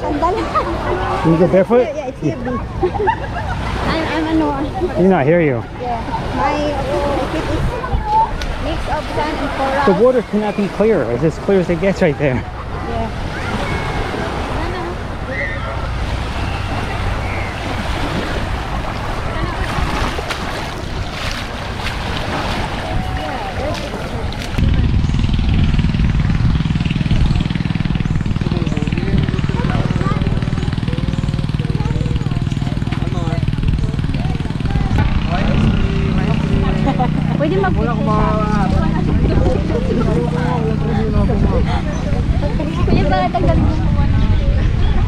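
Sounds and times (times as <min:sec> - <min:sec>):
voices in background: 0:00.0 - 0:25.4, 0:26.6 - 0:45.0
low engine drone: 0:00.0 - 0:45.0
wind on microphone: 0:05.6 - 0:10.8, 0:11.4 - 0:45.0
breaking surf: 0:05.9 - 0:27.1.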